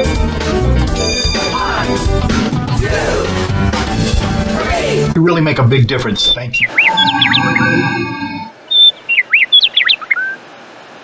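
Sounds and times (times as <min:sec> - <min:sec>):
bird chirping: 0:06.3 - 0:10.4.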